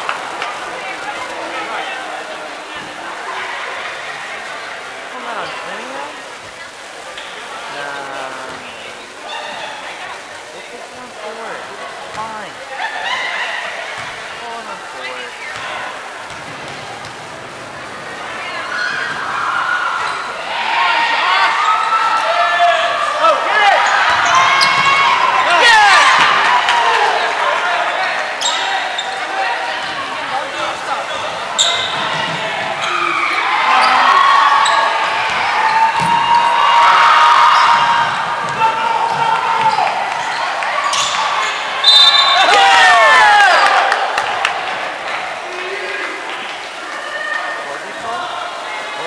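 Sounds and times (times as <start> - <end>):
people calling out: 7.5 - 10.0, 16.9 - 44.2
sneakers squeaking: 12.1 - 20.5, 23.7 - 26.4, 28.2 - 42.6.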